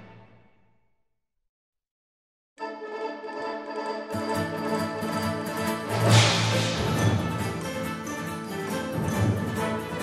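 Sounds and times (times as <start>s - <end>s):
orchestral show music: 4.0s - 10.0s
loud crash hit with thump: 5.9s - 7.7s.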